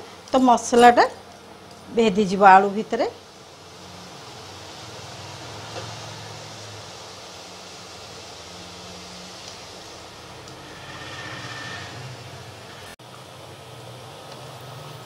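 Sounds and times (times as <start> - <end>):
gravy simmering hiss: 1.3 - 15.0.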